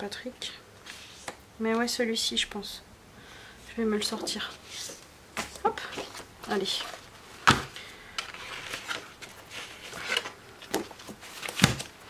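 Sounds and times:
paper rustling: 0:05.4 - 0:12.0.

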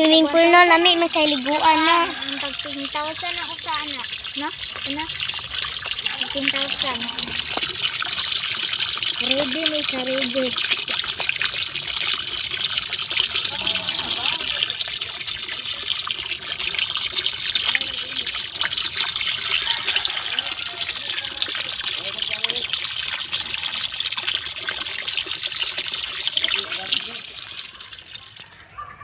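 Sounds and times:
water pouring into pond: 0:00.0 - 0:29.0.

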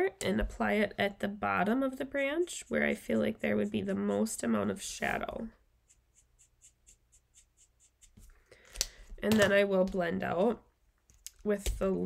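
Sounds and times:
marker scratching on cardstock: 0:05.8 - 0:08.3.

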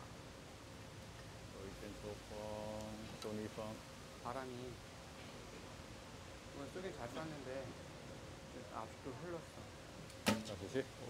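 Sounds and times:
sharp click: 0:10.2 - 0:10.6.

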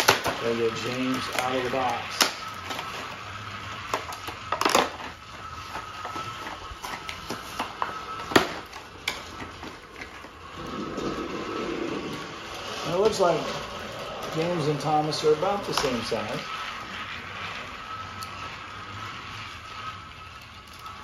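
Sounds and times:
packaging crinkling and clicking: 0:00.0 - 0:03.2, 0:03.9 - 0:10.4
toy train running on track: 0:00.0 - 0:21.0.

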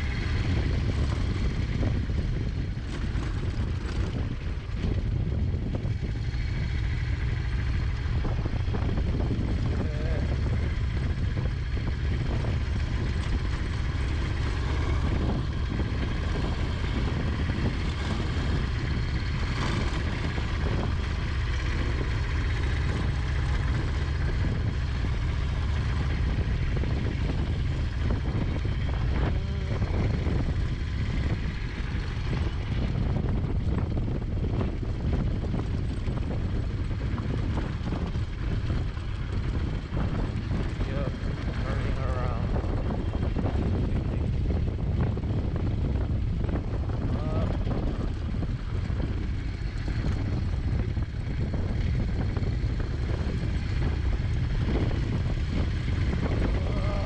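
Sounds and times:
motorcycle engine running: 0:00.0 - 0:57.0
wind rumble on microphone: 0:00.0 - 0:57.0.

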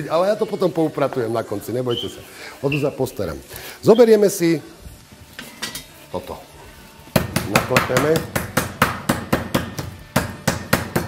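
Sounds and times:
meat mallet pounding on wooden board: 0:07.1 - 0:11.0.

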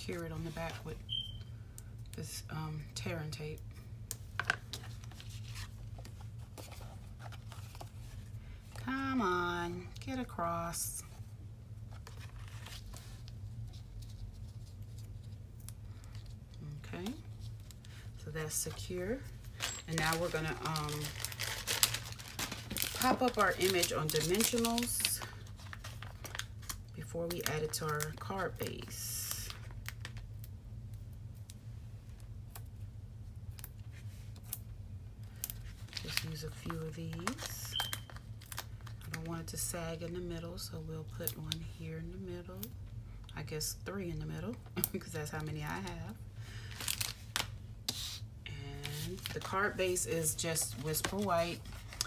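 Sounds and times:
steady low hum: 0:00.0 - 0:52.0
cardstock rustling: 0:11.9 - 0:15.4, 0:17.0 - 0:26.7, 0:48.8 - 0:52.0.

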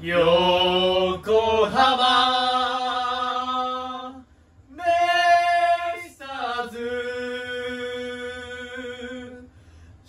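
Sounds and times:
person singing a cappella: 0:00.0 - 0:09.5.

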